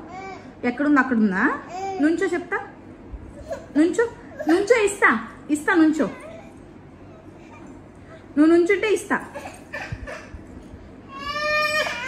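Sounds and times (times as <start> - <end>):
toddler whining cry: 11.1 - 12.0.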